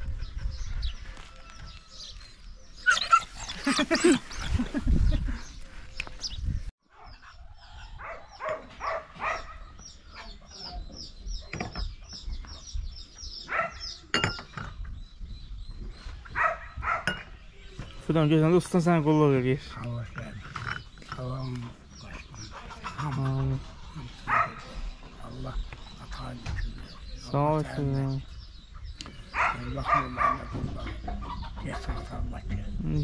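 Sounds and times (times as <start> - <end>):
man laughing: 3.5 - 5.6
dog barking: 6.9 - 10.3, 13.4 - 14.0, 16.3 - 17.2, 24.3 - 24.7, 29.4 - 30.6
tea cups clinking on saucers: 14.1 - 14.8
small bird chirping: 19.6 - 33.0.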